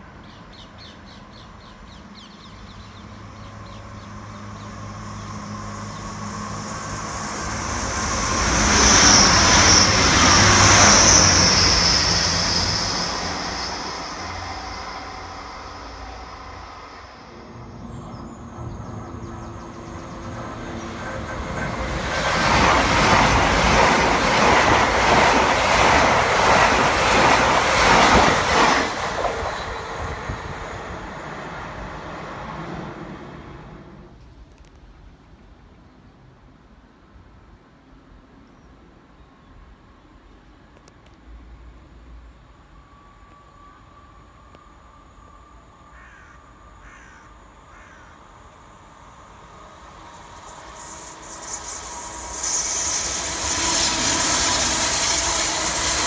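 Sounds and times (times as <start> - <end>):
train passing with high whine: 0.0 - 56.0
train wheels rattling over rails: 5.6 - 31.1, 49.4 - 56.0.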